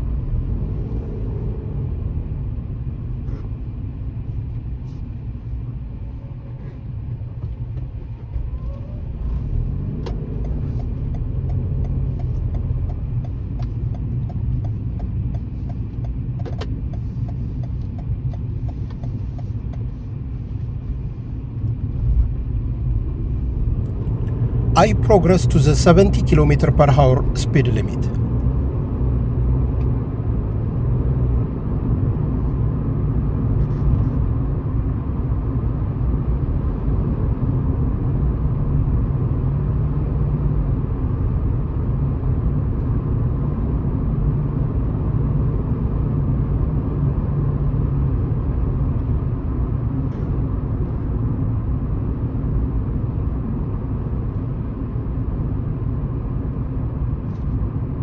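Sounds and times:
car engine hum: 0:00.0 - 0:58.0
road and tyre noise: 0:00.0 - 0:58.0.

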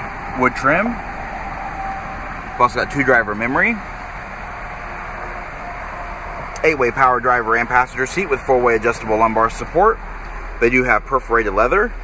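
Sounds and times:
car engine idling: 0:00.0 - 0:12.0
climate fan blowing: 0:00.0 - 0:12.0.

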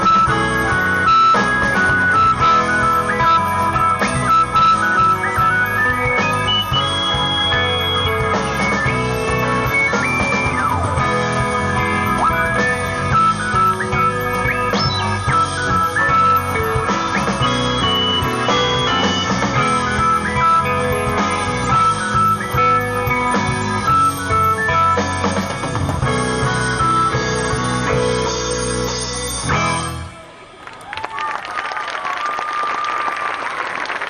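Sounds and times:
live rock band playing: 0:00.0 - 0:30.1
bending guitar lead notes: 0:00.0 - 0:30.4.

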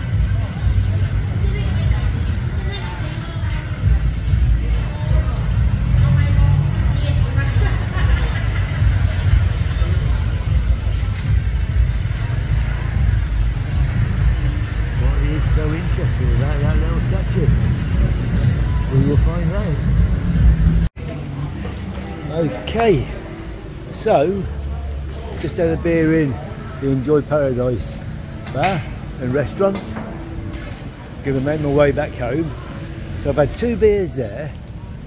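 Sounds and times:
people talking: 0:00.0 - 0:20.0, 0:21.0 - 0:30.0, 0:30.6 - 0:34.6
traffic rumble: 0:00.0 - 0:35.0.

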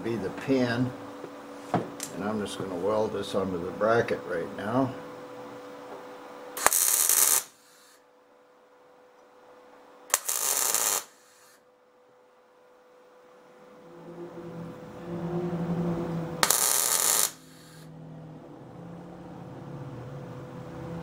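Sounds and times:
welder crackling hiss: 0:06.6 - 0:08.0, 0:10.1 - 0:11.6, 0:16.4 - 0:17.9
low hum: 0:13.1 - 0:21.0.

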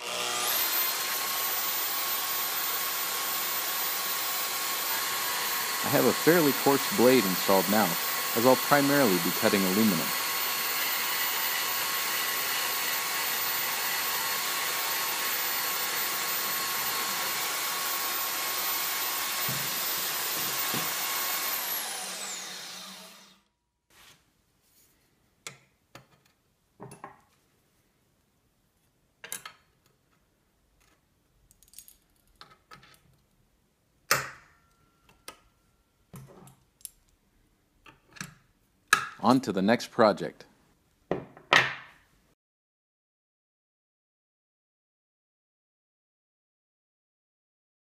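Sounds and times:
bandsaw cutting metal: 0:00.0 - 0:23.4
bandsaw winding down: 0:00.0 - 0:23.5.

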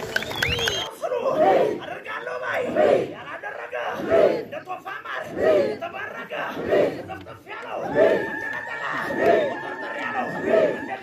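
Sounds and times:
crowd chanting in unison: 0:00.9 - 0:11.0.

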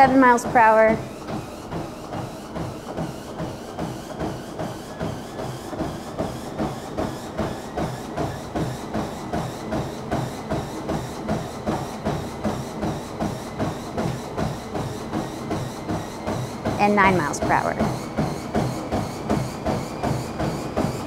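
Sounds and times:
footfalls on treadmill: 0:00.0 - 0:21.0.

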